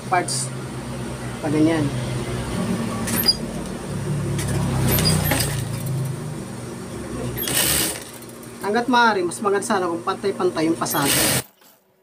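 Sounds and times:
sewing machine motor hum: 7.0 - 8.8, 10.8 - 11.6.

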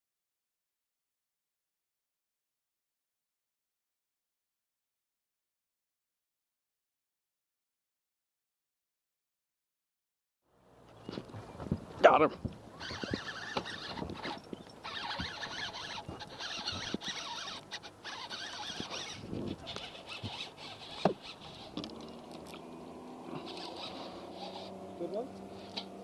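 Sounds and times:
fishing reel drag buzzing: 12.7 - 26.0.

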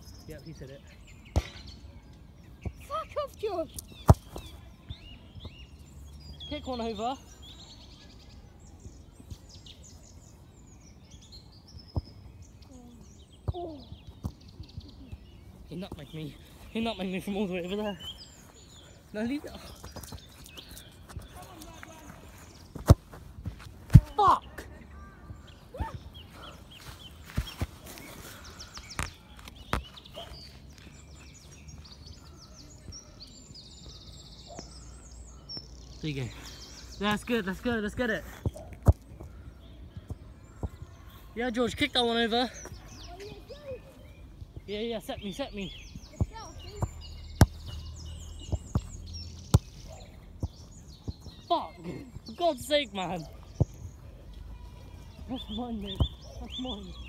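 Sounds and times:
football being kicked: 4.0 - 4.5, 22.7 - 24.4, 46.2 - 49.8, 55.9 - 56.2
faint bird chirps: 24.1 - 57.0.

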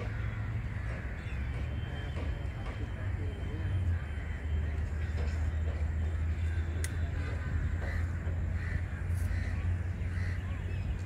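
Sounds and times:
bird calling: 0.0 - 11.0
steady low rumble: 2.9 - 11.0.

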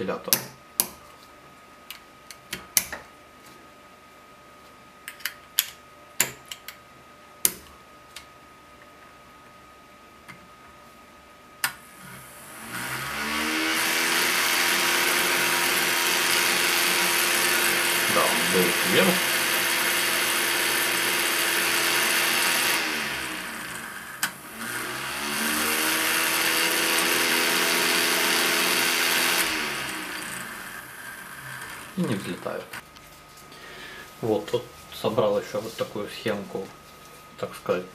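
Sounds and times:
toy motor whining: 12.6 - 24.0.

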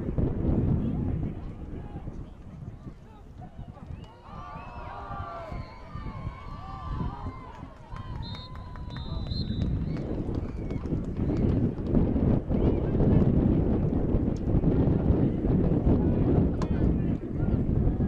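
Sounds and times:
wind buffeting microphone: 0.0 - 18.0
faint voices: 0.4 - 18.0.

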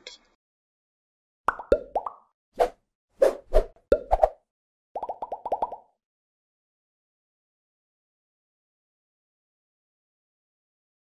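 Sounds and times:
cartoon pop sound effects: 1.5 - 2.2.

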